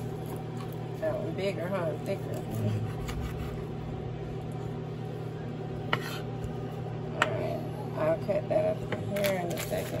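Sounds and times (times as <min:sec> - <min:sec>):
low hum: 0:00.0 - 0:10.0
knife chopping on cutting board: 0:05.9 - 0:06.3.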